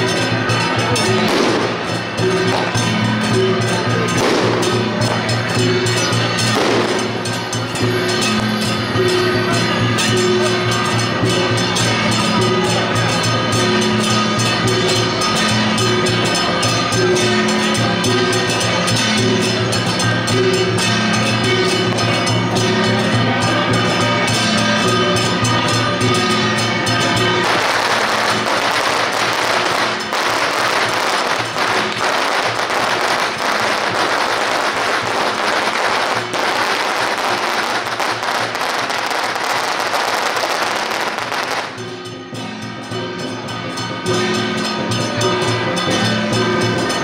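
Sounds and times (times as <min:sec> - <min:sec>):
firecrackers crackling: 0:00.0 - 0:09.7, 0:26.5 - 0:41.8
music with a beat: 0:00.0 - 0:47.0.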